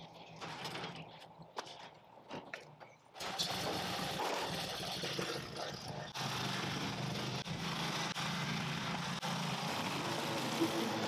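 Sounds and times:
small engine running: 3.2s - 11.0s.

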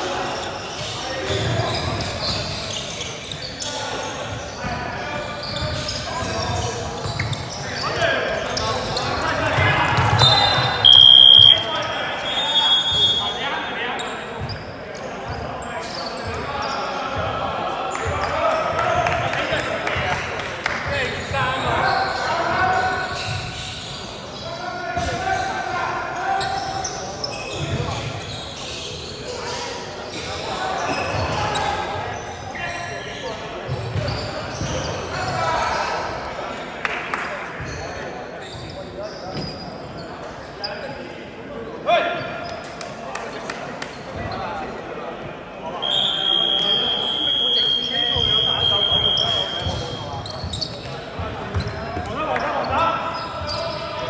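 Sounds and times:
players calling out: 2.6s - 14.1s.

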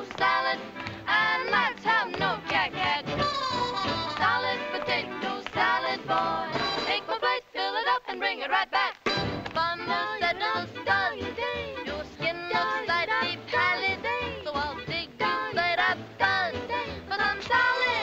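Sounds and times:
women singing together: 0.0s - 18.0s
band accompaniment: 2.2s - 7.0s, 9.1s - 15.7s.

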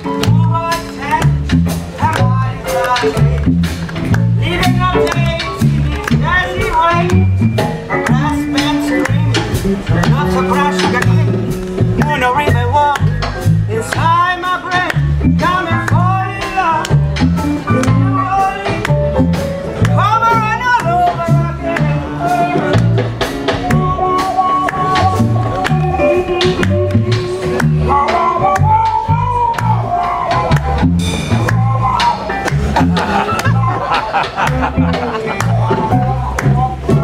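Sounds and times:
bass line: 0.0s - 37.0s
bending lead melody: 0.0s - 37.0s
blues band playing live: 0.0s - 37.0s
drum kit beat: 0.0s - 37.0s.

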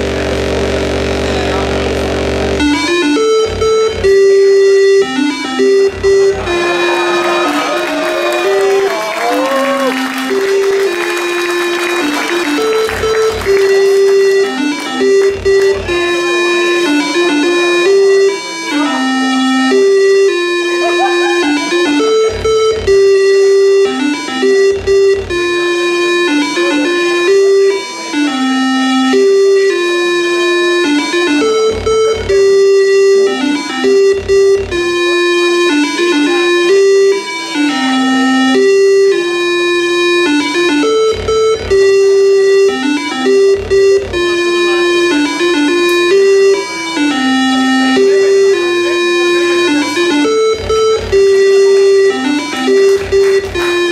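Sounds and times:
looping synthesized melody: 0.0s - 53.9s.

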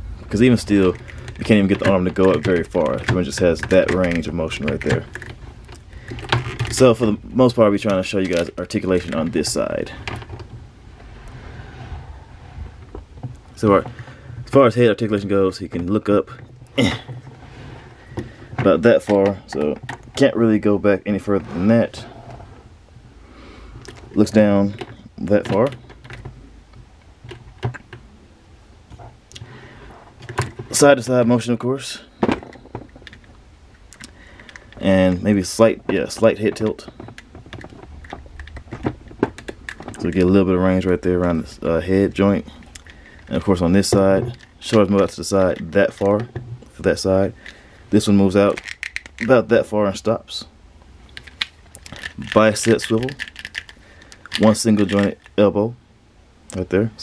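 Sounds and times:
low steady hum: 0.0s - 57.0s
plastic figure handled on table: 51.1s - 55.4s.

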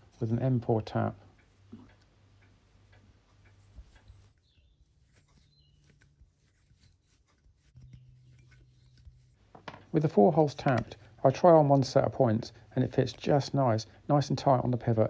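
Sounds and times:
tap ticking and scraping in metal: 0.0s - 14.0s
low steady hum: 0.0s - 15.0s.

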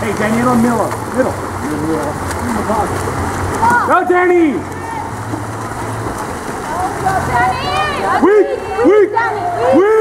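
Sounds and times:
water splashing in pool: 0.0s - 10.0s.

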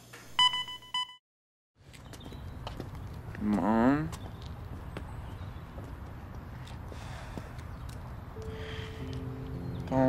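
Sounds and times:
patient monitor beep: 0.4s - 1.2s.

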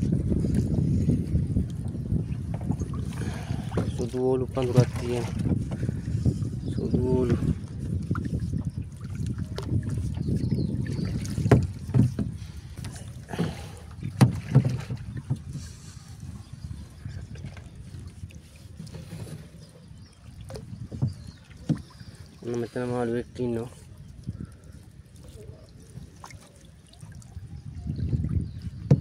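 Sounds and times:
wind rumble on microphone: 0.0s - 26.3s, 27.0s - 29.0s
net hauled over boat side: 0.0s - 29.0s
water splashing: 2.4s - 6.0s, 6.8s - 29.0s.

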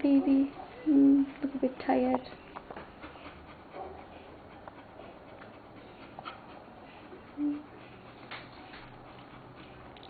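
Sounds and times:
puppies suckling: 0.0s - 10.0s.

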